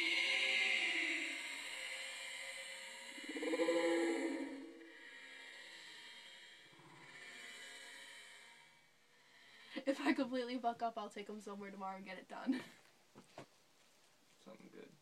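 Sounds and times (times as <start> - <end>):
woman making wordless vocal sounds: 3.2 - 4.9.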